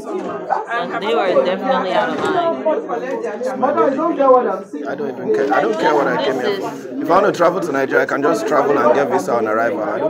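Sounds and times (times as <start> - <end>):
people talking over one another: 0.0 - 10.0.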